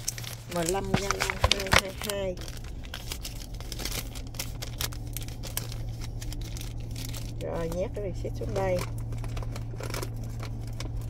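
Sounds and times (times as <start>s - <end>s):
paper receipt crinkling: 0.0s - 11.0s
steady low hum: 0.0s - 11.0s.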